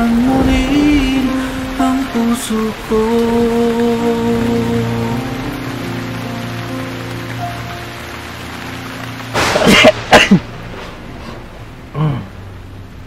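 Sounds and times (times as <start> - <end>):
sung love ballad: 0.0 - 9.9
rain: 0.0 - 13.0
loud noisy burst: 8.6 - 12.6.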